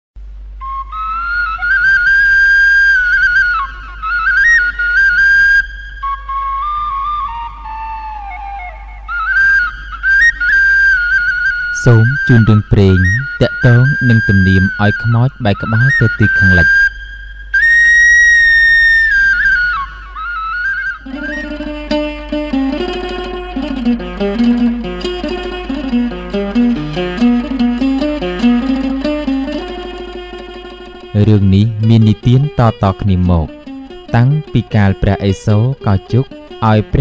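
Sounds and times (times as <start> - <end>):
flute-like wind instrument melody: 0.6 - 37.0
steady low hum: 8.8 - 37.0.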